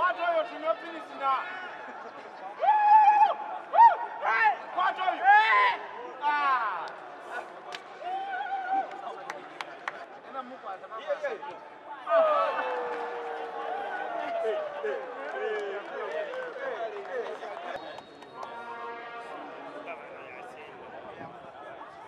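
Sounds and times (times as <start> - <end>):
voices shouting and calling out: 0.0 - 22.0.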